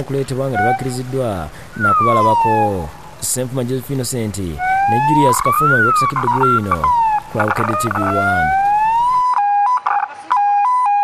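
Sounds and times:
police siren two-tone: 4.6s - 11.0s.

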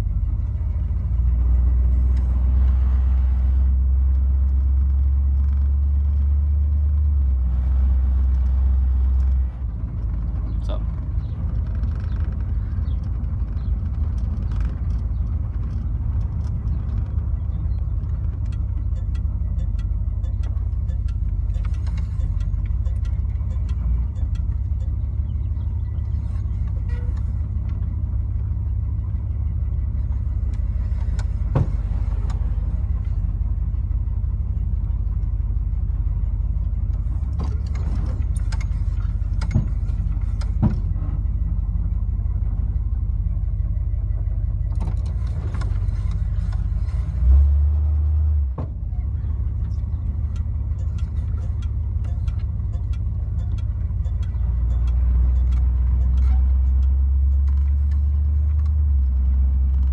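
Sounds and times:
car engine rumbling: 0.0s - 59.9s.

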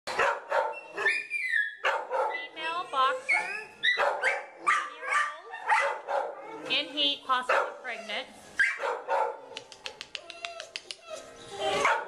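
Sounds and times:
dogs barking: 0.1s - 2.6s, 3.3s - 6.7s, 7.5s - 8.0s, 8.6s - 9.6s, 11.7s - 12.0s
dog whining: 0.7s - 1.8s, 2.8s - 5.8s, 9.6s - 12.0s.

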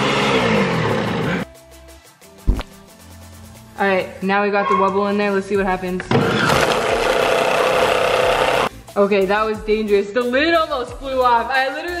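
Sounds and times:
blender running: 0.0s - 1.4s, 6.2s - 8.7s.

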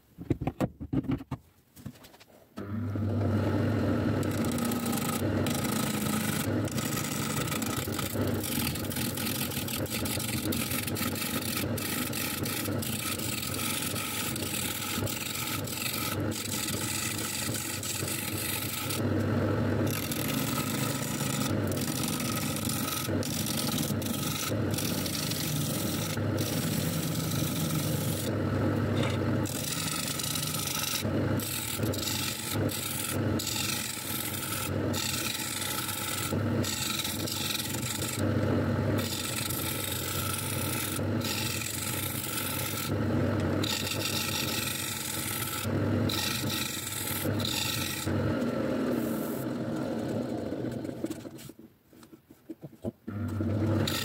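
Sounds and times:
lathe motor hum: 2.6s - 51.3s, 53.1s - 54.0s
gouge rasping on spinning wood: 4.0s - 48.2s, 53.2s - 54.0s.

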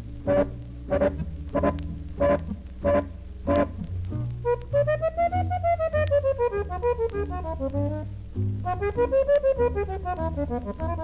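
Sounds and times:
steady bass line: 0.0s - 11.0s
jazz quartet playing: 0.2s - 11.0s.

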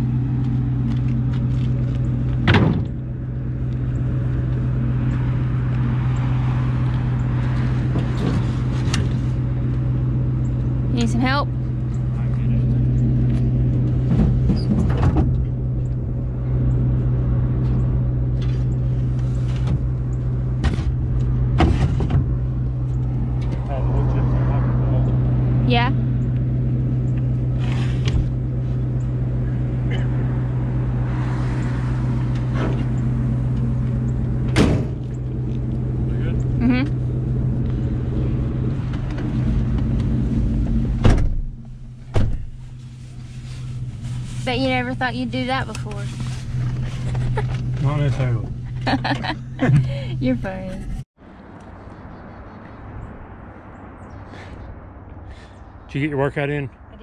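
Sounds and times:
truck engine idling: 32.1s - 51.0s
car door shutting: 34.4s - 35.2s, 40.8s - 42.6s.

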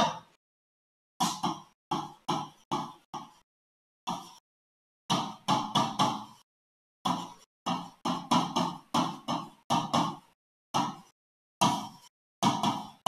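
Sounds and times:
stylus knocking on touchscreen: 7.1s - 13.0s.

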